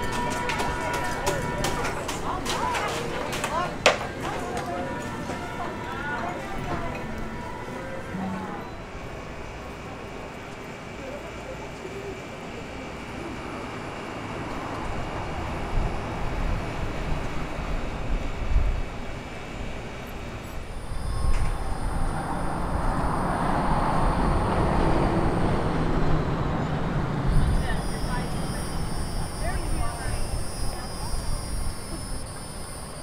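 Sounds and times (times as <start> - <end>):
faint voices: 0.0 - 14.7, 26.9 - 33.0
wind rumbling on microphone: 14.9 - 33.0
high-pitched whine: 20.4 - 33.0.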